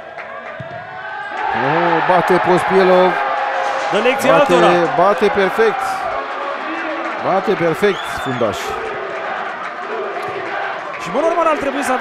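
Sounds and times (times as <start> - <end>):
crowd cheering: 0.0 - 12.0
crowd clapping: 0.0 - 12.0.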